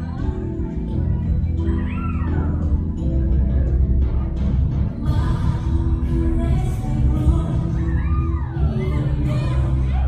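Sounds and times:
waltz music: 0:00.0 - 0:10.0.

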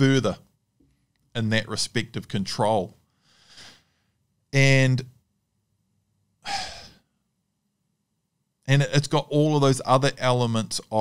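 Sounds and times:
man breathing into microphone: 0:03.1 - 0:04.2.

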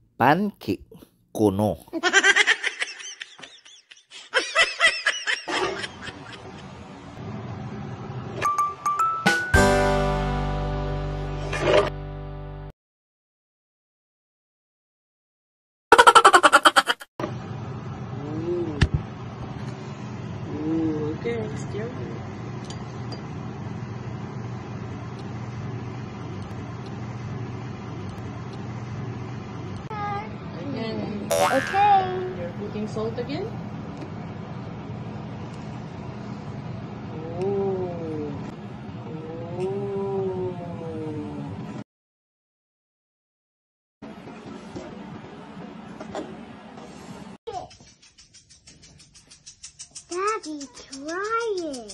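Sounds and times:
soft voice sounds: 0:37.1 - 0:38.5
child making wordless notes: 0:50.1 - 0:51.9.

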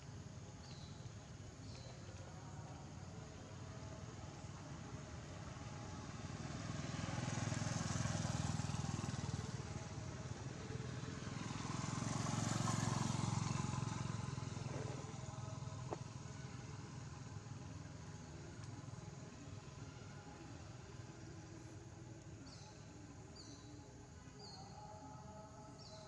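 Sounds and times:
vehicles passing by: 0:00.0 - 0:26.0.

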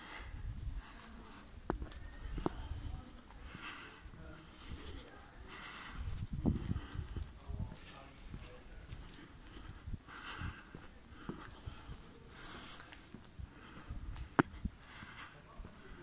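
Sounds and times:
person breathing: 0:00.0 - 0:07.4, 0:08.9 - 0:16.0.

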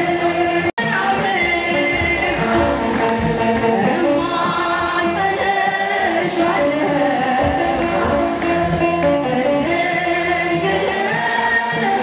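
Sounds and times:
voices singing along: 0:00.0 - 0:12.0
woman singing into a microphone: 0:09.8 - 0:12.0.

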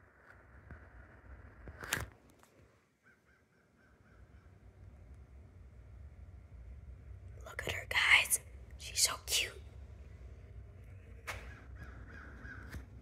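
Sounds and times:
low room hum: 0:00.0 - 0:13.0
person whispering: 0:07.4 - 0:09.7.

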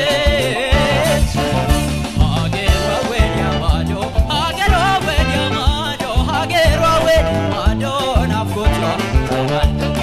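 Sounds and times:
band playing: 0:00.0 - 0:10.0
man singing live: 0:00.0 - 0:10.0.

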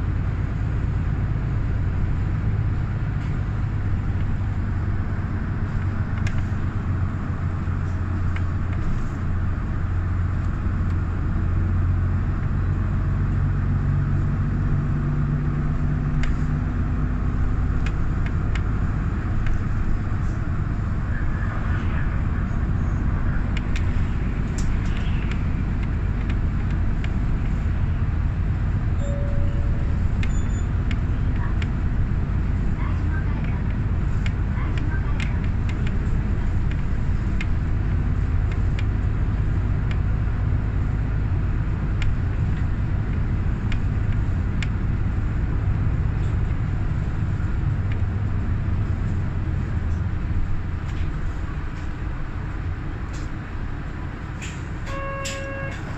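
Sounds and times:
bus engine hum: 0:00.0 - 0:55.9
road noise: 0:00.0 - 0:55.9
light rattles and clicks: 0:29.8 - 0:40.1.

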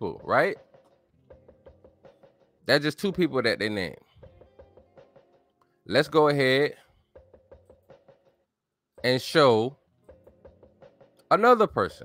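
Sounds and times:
soft knocking percussion: 0:10.1 - 0:11.3.

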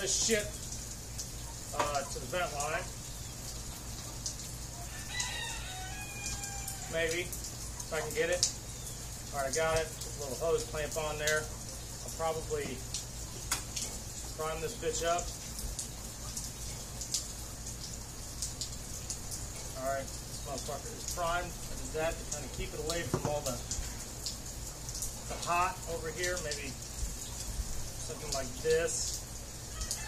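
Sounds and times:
rain falling: 0:00.0 - 0:30.0
sharp drip-like ticks: 0:00.0 - 0:30.0
rooster crowing: 0:04.7 - 0:07.1, 0:29.6 - 0:30.0.

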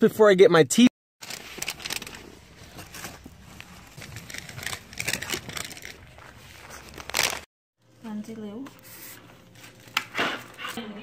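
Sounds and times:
paper bag rustling: 0:01.2 - 0:07.5.

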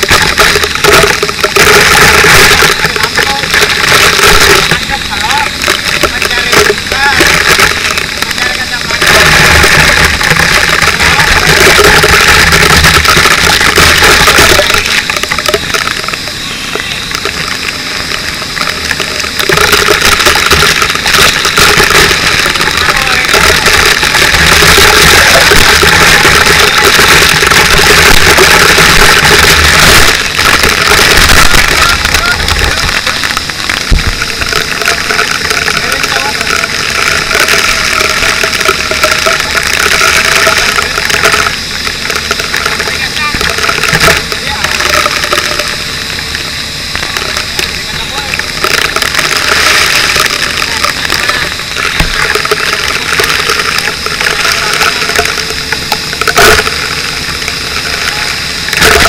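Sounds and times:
engine running: 0:00.0 - 0:59.0
water spraying against camera: 0:00.0 - 0:59.0.

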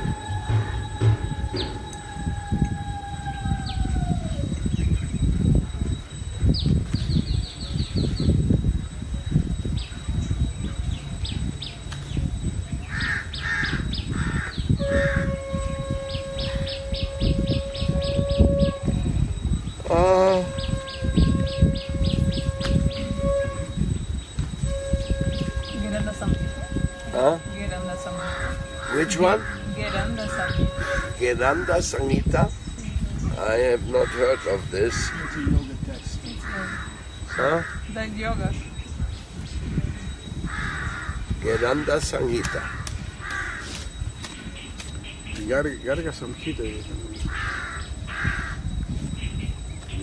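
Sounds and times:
wavering bird call: 0:00.0 - 0:05.4, 0:09.6 - 0:50.0
steady droning tone: 0:00.0 - 0:50.0
wind rumble on microphone: 0:00.0 - 0:50.0
bird chirping: 0:09.6 - 0:50.0
crow cawing: 0:12.9 - 0:15.2, 0:33.9 - 0:35.5, 0:36.4 - 0:38.0, 0:40.5 - 0:43.8, 0:47.3 - 0:48.7.

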